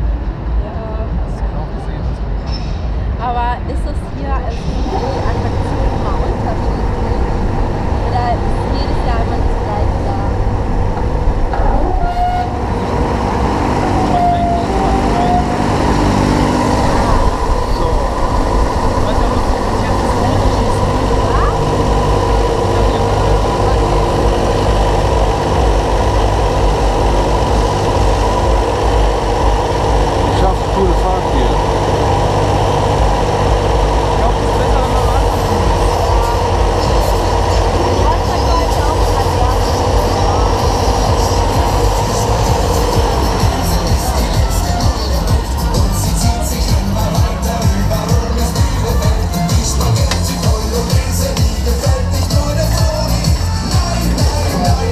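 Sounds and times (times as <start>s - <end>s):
wind rumble on microphone: 0.0s - 44.6s
ride machinery humming: 0.0s - 54.9s.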